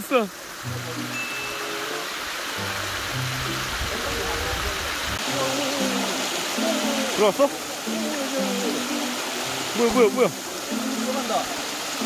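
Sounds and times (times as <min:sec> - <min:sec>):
water rushing over rocks: 0:00.0 - 0:12.0.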